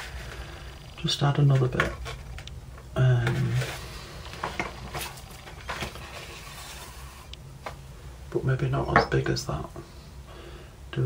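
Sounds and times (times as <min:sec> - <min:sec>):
paper rustling: 0:03.2 - 0:07.8.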